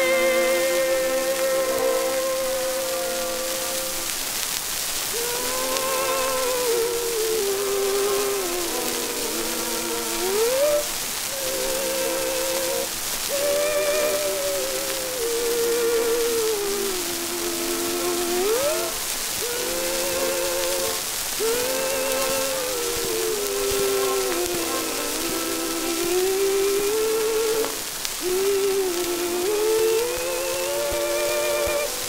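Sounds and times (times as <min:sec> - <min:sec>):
female vocal trio singing: 0:00.0 - 0:04.2, 0:05.1 - 0:32.0
disc surface hiss: 0:00.0 - 0:32.0
orchestra: 0:00.0 - 0:32.0.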